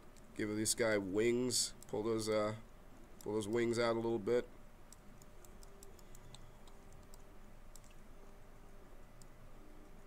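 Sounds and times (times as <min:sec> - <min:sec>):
faint low hum: 0:00.0 - 0:10.0
mouse and keyboard clicks: 0:04.9 - 0:08.0.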